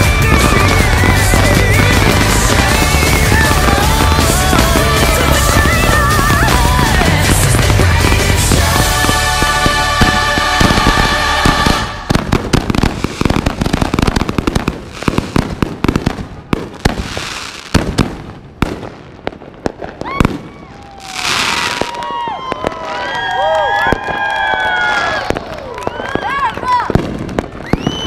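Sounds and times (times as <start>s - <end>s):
music: 0.0s - 12.2s
firework bursts and crackling: 0.0s - 28.0s
whistling fireworks: 0.0s - 28.0s.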